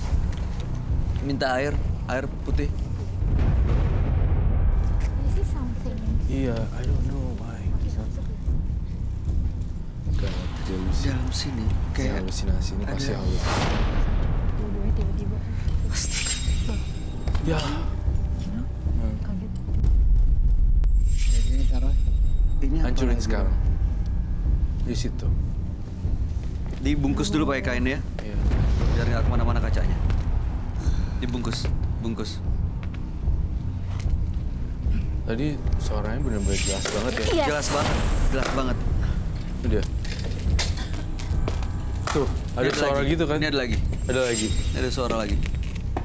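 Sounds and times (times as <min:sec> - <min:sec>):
deep steady rumble: 0:00.0 - 0:36.5.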